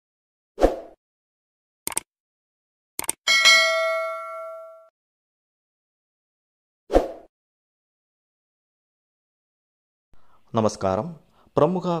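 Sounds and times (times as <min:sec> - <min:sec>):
quick clicks: 0:01.9 - 0:02.1, 0:03.0 - 0:03.2
bright bell chime: 0:03.3 - 0:04.9.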